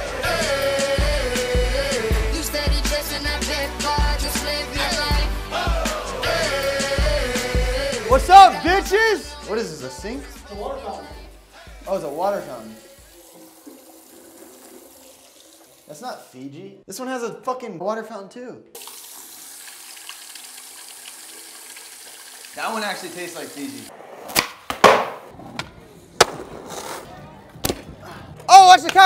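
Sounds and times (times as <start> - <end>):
water trickling into a bowl: 12.4 - 16.0, 18.8 - 23.1
skateboard wheels rolling: 23.9 - 28.0
skateboard clacking: 24.3 - 27.0.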